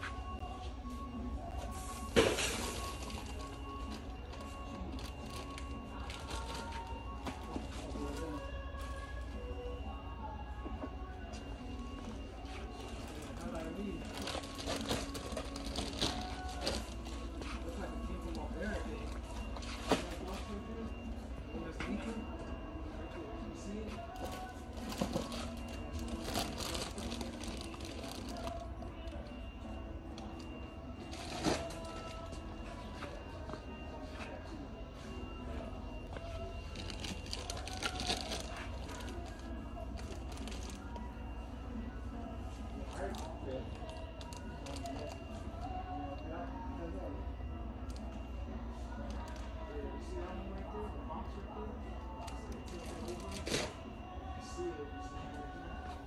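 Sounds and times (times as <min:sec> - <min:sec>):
faint indistinct voices: 0:00.0 - 0:56.0.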